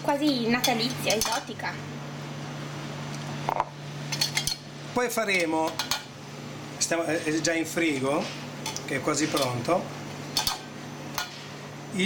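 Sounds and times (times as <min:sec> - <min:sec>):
metal tongs clinking on metal and glass: 0:00.6 - 0:01.5, 0:04.1 - 0:04.6, 0:08.6 - 0:09.6, 0:10.4 - 0:10.6.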